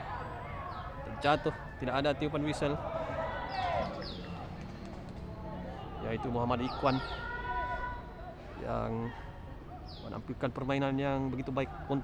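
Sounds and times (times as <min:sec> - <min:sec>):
sports commentary: 0:00.0 - 0:04.6, 0:05.2 - 0:12.0
distant players' voices: 0:00.0 - 0:12.0.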